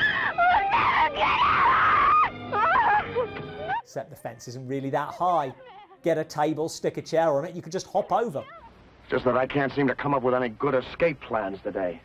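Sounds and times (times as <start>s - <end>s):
woman shrieking and laughing: 0.0s - 3.9s.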